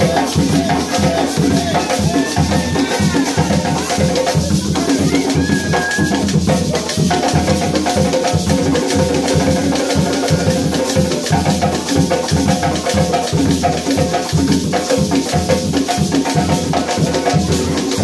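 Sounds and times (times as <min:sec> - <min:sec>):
hand drums: 0:00.0 - 0:18.0.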